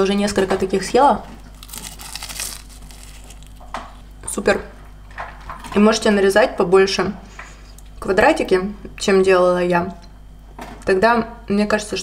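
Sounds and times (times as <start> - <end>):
pastry crinkling and rustling: 1.0 - 4.2.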